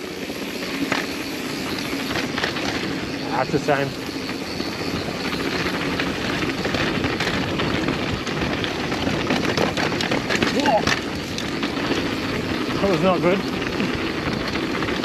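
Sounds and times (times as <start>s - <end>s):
bike chain and frame rattling: 0.0s - 15.0s
tyres rushing over rough ground: 0.0s - 15.0s.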